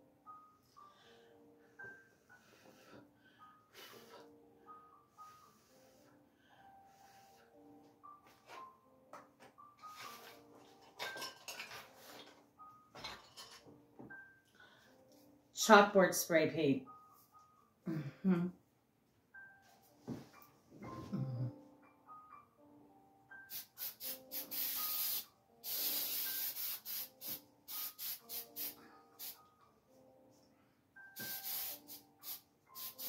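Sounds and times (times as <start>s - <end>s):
aerosol spray can hissing: 23.5s - 29.4s, 31.2s - 33.0s.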